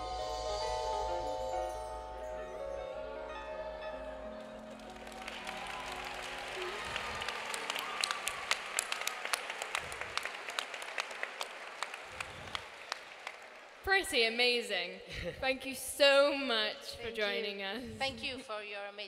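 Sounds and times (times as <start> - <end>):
chime-like musical tones: 0.0 - 4.7
audience applause: 4.4 - 13.8.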